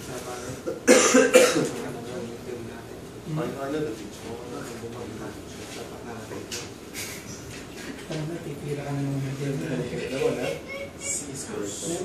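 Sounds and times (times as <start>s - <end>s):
person coughing: 0.6s - 1.8s.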